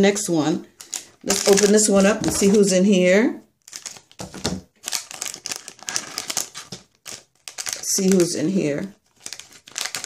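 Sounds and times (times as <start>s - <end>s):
plastic bag crinkling: 0.8s - 2.7s, 3.6s - 10.0s.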